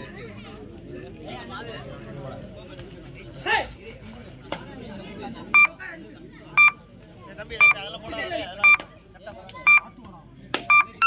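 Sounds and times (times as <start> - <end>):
crowd voices and chatter: 0.0 - 11.0
short electronic beep: 10.7 - 11.0.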